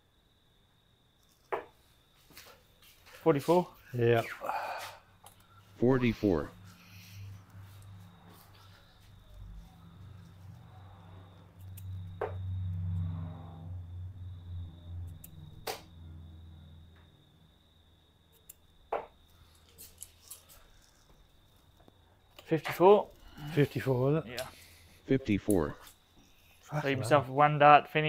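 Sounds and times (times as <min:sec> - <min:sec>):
darts striking dartboard: 0:15.6 - 0:15.9.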